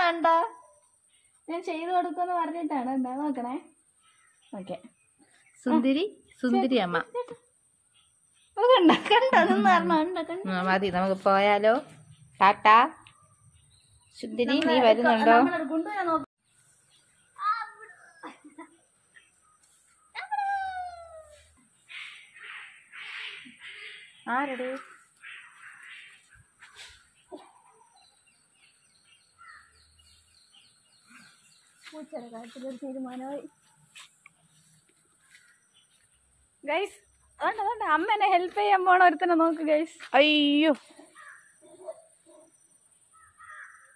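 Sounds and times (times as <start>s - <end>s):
crows cawing: 21.9s - 26.8s, 29.4s - 29.8s, 41.1s - 41.7s, 43.1s - 43.9s.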